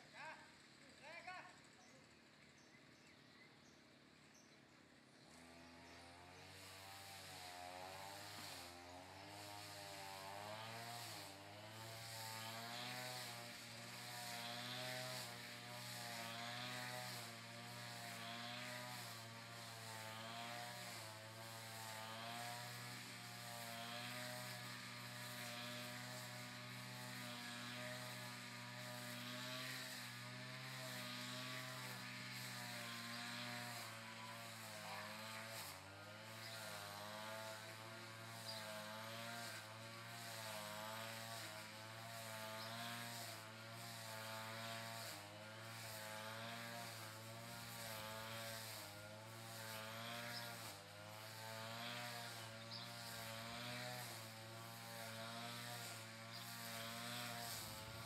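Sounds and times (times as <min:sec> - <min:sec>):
brush cutter engine running: 0:00.0 - 0:04.1, 0:04.8 - 0:58.0.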